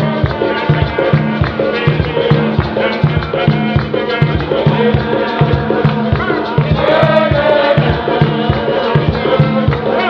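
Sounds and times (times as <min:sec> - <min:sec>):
group singing a hymn: 0:00.0 - 0:10.0
steady drum beat: 0:00.0 - 0:10.0.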